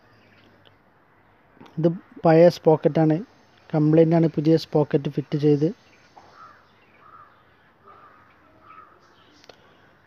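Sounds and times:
bird calling: 5.8s - 10.0s.

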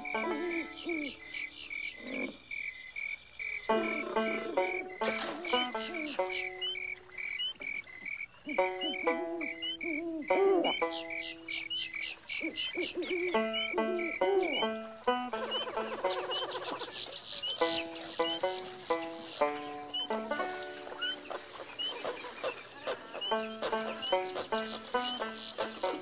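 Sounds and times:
crickets chirping: 0.0s - 15.1s, 16.4s - 25.9s
frogs croaking: 0.0s - 26.0s.

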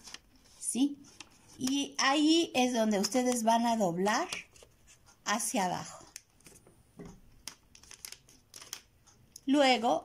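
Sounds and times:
paper rustling and crinkling: 7.4s - 8.9s.

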